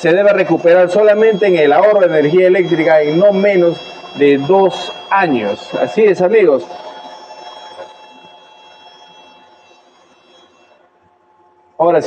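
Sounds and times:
air compressor whine: 0:00.0 - 0:12.0.

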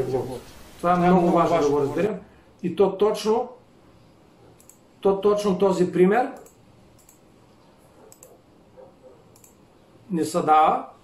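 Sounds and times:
faint sharp clicks: 0:04.6 - 0:04.8, 0:06.4 - 0:07.2, 0:08.1 - 0:08.4, 0:09.3 - 0:09.6.

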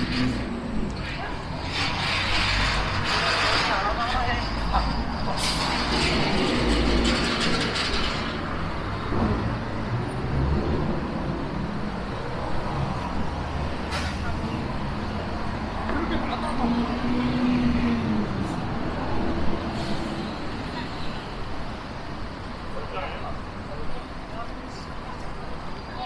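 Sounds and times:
road traffic rumble: 0:00.0 - 0:26.0
passersby's voices: 0:13.8 - 0:26.0.

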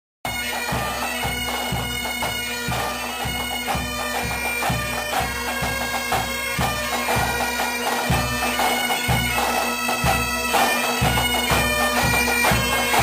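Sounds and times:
bagpipe melody over drone: 0:00.3 - 0:13.0
drum beating: 0:00.3 - 0:13.0.

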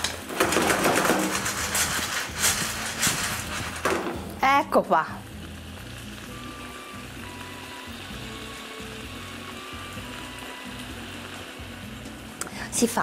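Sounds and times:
background music: 0:00.0 - 0:13.0
clams sizzling in a frying pan: 0:00.0 - 0:13.0.

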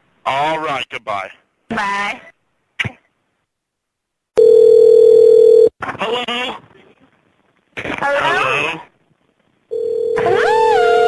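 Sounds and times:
telephone ringback tone: 0:04.4 - 0:05.7, 0:09.7 - 0:11.0.

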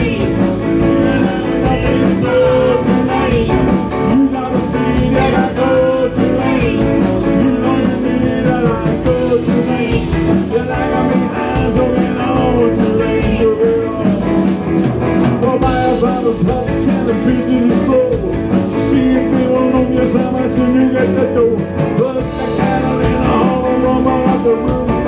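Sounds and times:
person singing: 0:00.0 - 0:14.6, 0:15.2 - 0:25.0
bass guitar: 0:00.0 - 0:25.0
drums: 0:00.0 - 0:25.0
electric guitar: 0:00.0 - 0:25.0.

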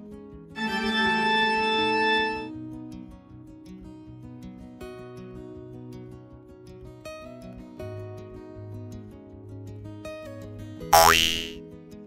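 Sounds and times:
cartoon boing sound effect: 0:11.0 - 0:11.6.

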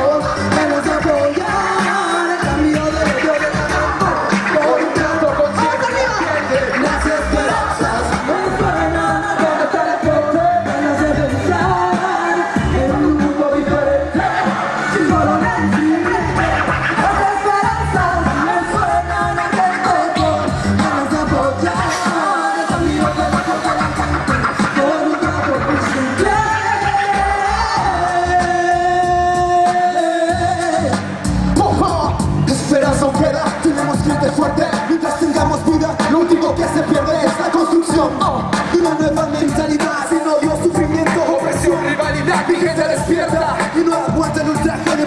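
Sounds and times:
hip-hop beat with bass: 0:00.0 - 0:45.0.

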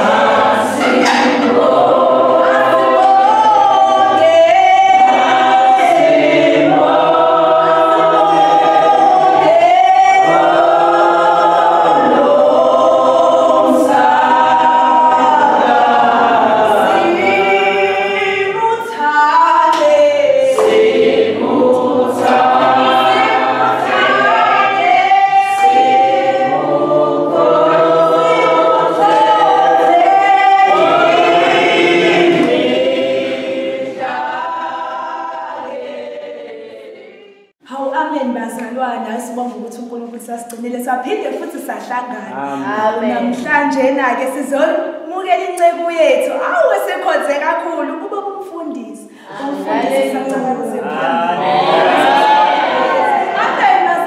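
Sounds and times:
choir singing: 0:00.0 - 0:37.6, 0:49.2 - 0:54.0.

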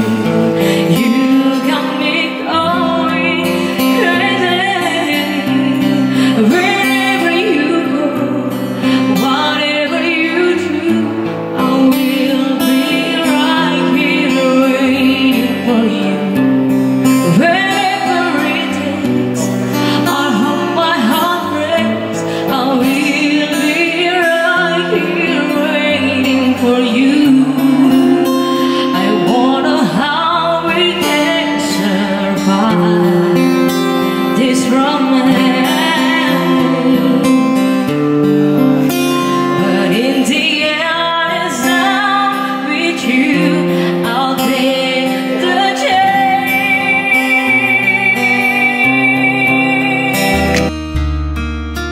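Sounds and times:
woman singing into microphone: 0:00.0 - 0:38.1, 0:38.9 - 0:50.7
strummed acoustic guitar: 0:00.0 - 0:51.9.

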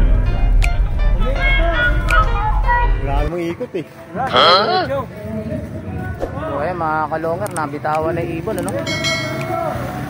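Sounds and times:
song with heavy bass: 0:04.2 - 0:04.9.

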